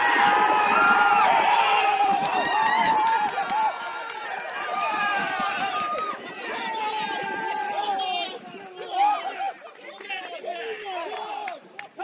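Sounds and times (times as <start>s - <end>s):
men shouting and cheering: 0.0s - 12.0s.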